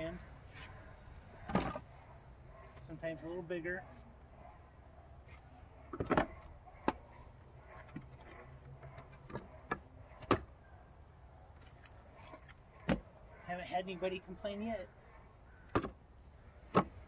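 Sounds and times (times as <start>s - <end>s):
firewood knocking while stacked: 16.7s - 17.0s.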